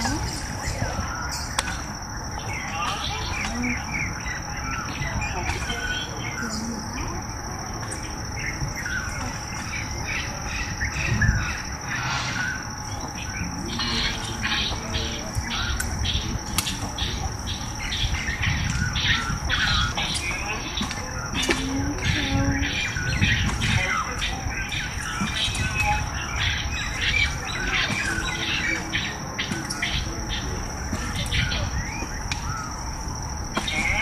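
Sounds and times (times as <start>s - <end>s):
birds chirping: 0.0s - 34.0s
high-pitched insect drone: 0.0s - 34.0s.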